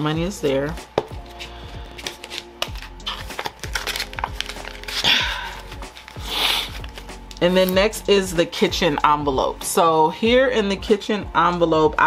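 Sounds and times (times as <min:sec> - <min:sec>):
soft background music: 0:00.0 - 0:12.0
plastic envelope crinkling: 0:01.2 - 0:07.8
cash bills rustling: 0:01.2 - 0:07.9.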